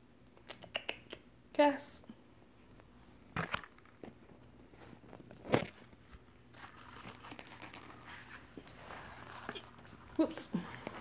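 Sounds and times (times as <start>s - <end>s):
wrapping paper crinkling: 6.5s - 10.3s.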